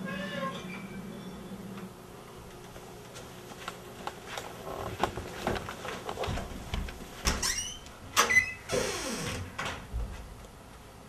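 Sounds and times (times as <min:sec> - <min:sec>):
door squeaks: 0:00.0 - 0:01.5, 0:07.2 - 0:09.5
door swinging open: 0:07.2 - 0:09.9.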